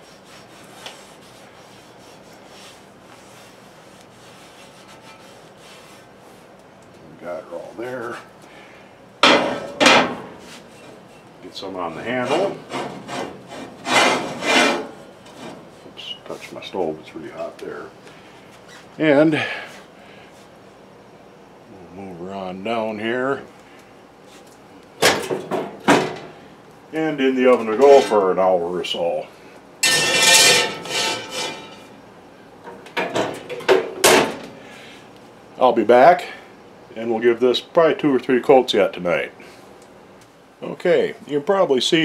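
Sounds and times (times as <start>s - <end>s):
cloth rubbing on metal: 0.0s - 6.6s
oven door knocking and clanking shut: 9.2s - 10.4s
cast iron skillet ringing: 29.8s - 31.8s.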